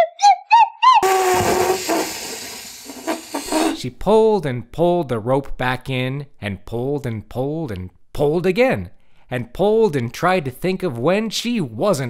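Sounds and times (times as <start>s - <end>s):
loud rushing hiss: 1.1s - 3.8s.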